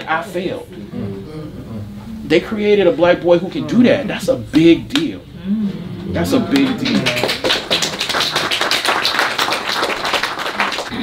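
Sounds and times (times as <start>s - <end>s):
audience applauding: 6.5s - 11.0s.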